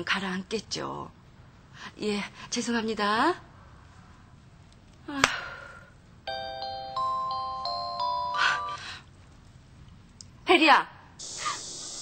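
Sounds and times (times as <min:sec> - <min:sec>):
chime-like electronic melody: 0:06.3 - 0:08.8.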